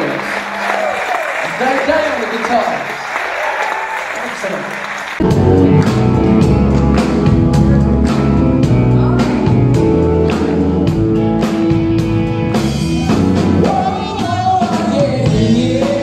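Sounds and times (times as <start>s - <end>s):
audience applauding: 0.0s - 8.3s
live band playing loudly: 5.1s - 16.0s.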